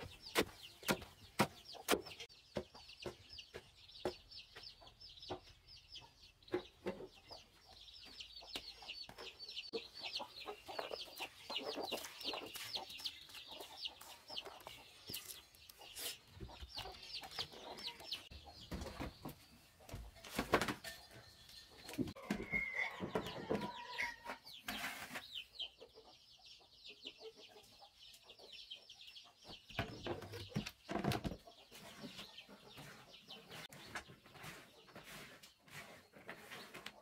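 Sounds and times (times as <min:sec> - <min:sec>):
chickens clucking: 0:00.0 - 0:37.0.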